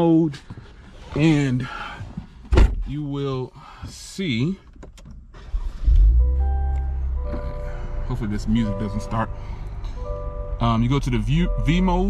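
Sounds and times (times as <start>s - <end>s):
music on car audio system: 6.0s - 10.6s.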